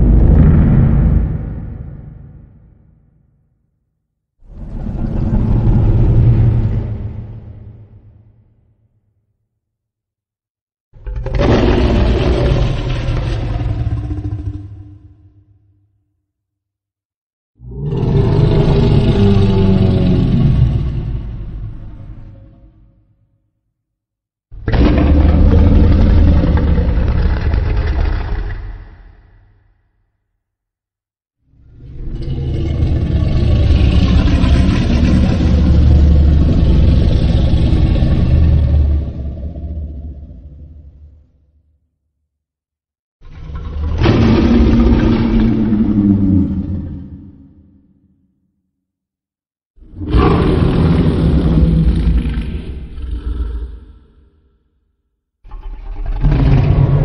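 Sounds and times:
deep rumble: 0:00.0 - 0:03.0
monster roar: 0:04.5 - 0:07.8, 0:11.0 - 0:15.2, 0:17.6 - 0:22.8, 0:24.6 - 0:29.2, 0:31.7 - 0:41.3, 0:43.2 - 0:47.8, 0:49.8 - 0:54.6, 0:55.5 - 0:57.0.

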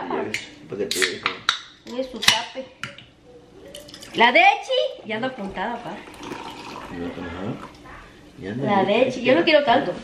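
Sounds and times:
liquid pouring into cup: 0:03.6 - 0:08.2.

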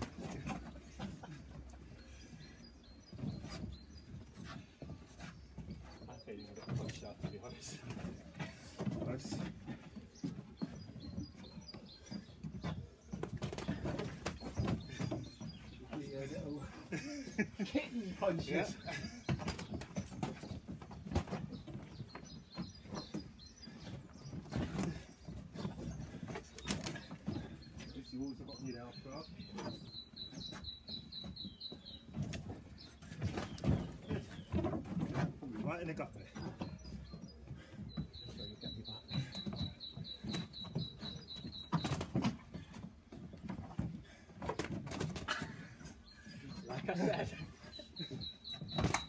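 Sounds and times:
feet shifting on wooden decking: 0:00.0 - 0:49.0.

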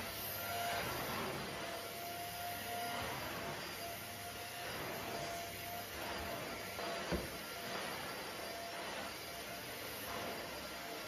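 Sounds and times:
vacuum cleaner running: 0:00.0 - 0:11.0
vacuum head across rug: 0:00.0 - 0:11.0.

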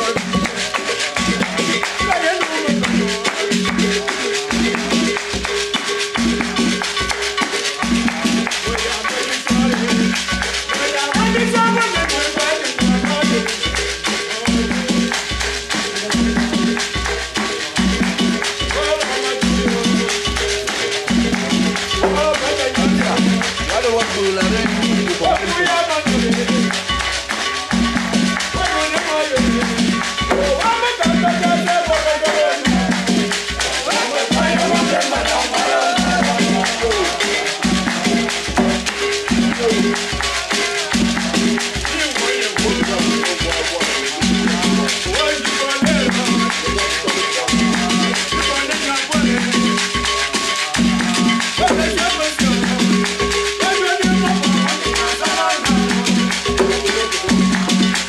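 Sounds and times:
folk music: 0:00.0 - 0:58.0
shaken rattle percussion: 0:00.0 - 0:58.0
low repeated notes: 0:12.8 - 0:55.0.

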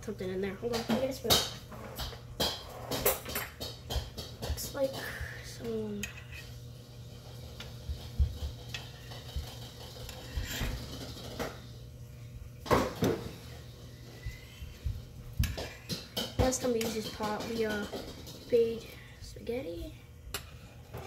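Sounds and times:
range fan humming: 0:00.0 - 0:21.0.

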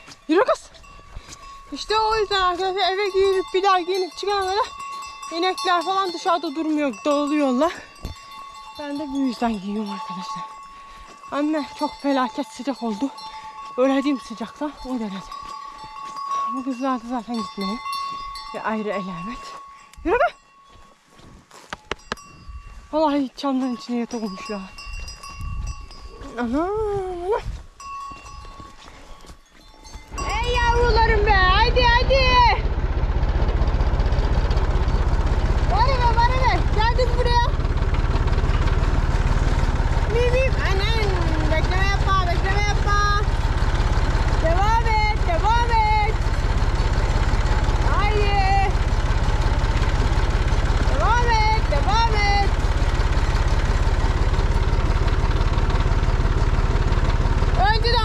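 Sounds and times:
tractor engine droning: 0:00.0 - 0:20.1, 0:29.8 - 0:58.0.

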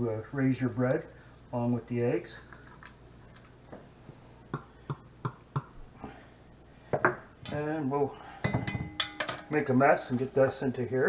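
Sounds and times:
spatula knocking glass cup: 0:08.4 - 0:09.5.

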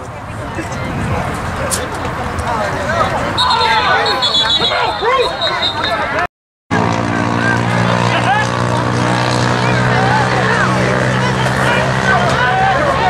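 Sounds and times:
spectators talking and shouting: 0:00.0 - 0:13.0
vehicle engine running: 0:06.7 - 0:13.0.

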